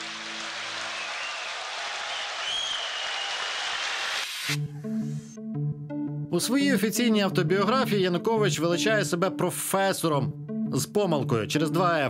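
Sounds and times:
audience applauding: 0:00.0 - 0:04.5
low music: 0:04.5 - 0:12.0.

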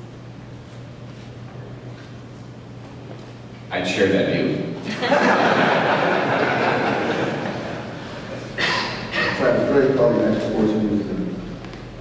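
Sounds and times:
crowd laughing: 0:04.8 - 0:08.6.

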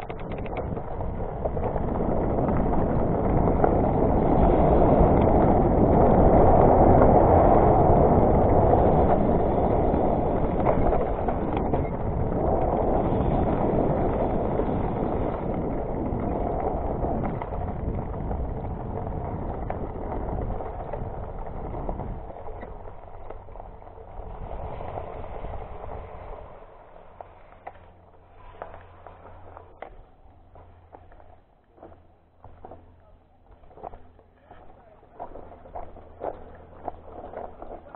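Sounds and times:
wind on microphone: 0:00.0 - 0:31.2
bike tyres on dirt: 0:00.0 - 0:37.9.

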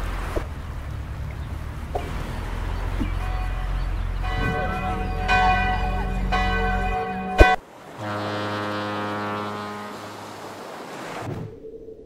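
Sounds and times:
steady low chord tone: 0:00.9 - 0:10.4
church bells ringing: 0:03.1 - 0:07.6.

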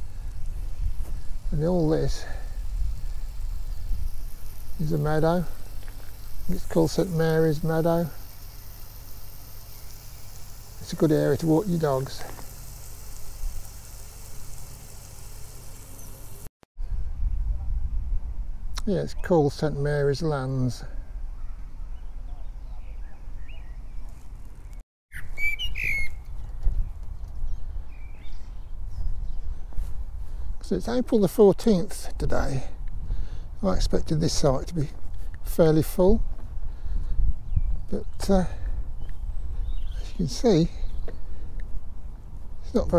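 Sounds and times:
wind buffeting microphone: 0:00.0 - 0:06.9, 0:36.1 - 0:42.6
steady low rumble: 0:00.0 - 0:18.8
birds chirping and calling: 0:21.3 - 0:29.9, 0:36.6 - 0:41.8.

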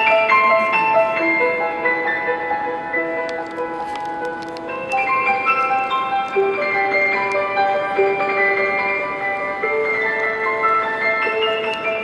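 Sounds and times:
solo piano playing: 0:00.0 - 0:12.0.

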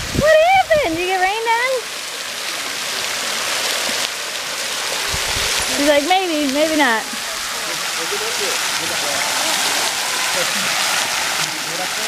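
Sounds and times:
waterfall hiss: 0:00.0 - 0:12.0.

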